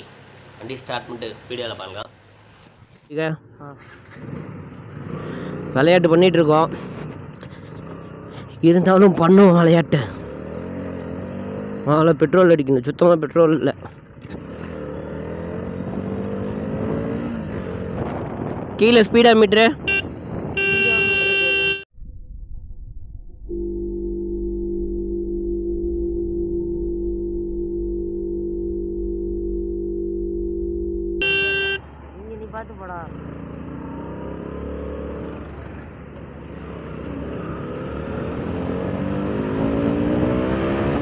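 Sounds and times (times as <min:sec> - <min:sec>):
low rumble: 0:21.9 - 0:31.2
steady low electronic tone: 0:22.0 - 0:31.8.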